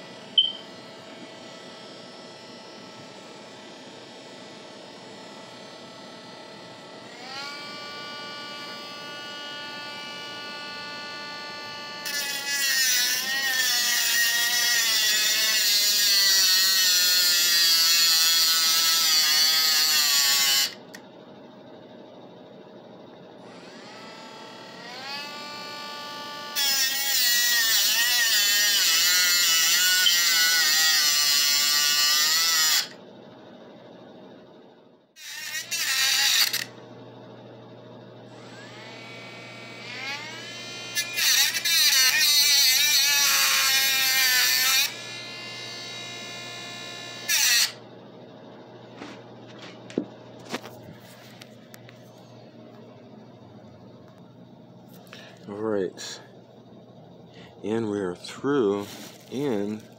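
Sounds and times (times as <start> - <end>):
metal-cutting saw whining: 5.1 - 21.0, 23.4 - 33.0, 35.2 - 36.8, 38.3 - 47.9, 57.6 - 59.9.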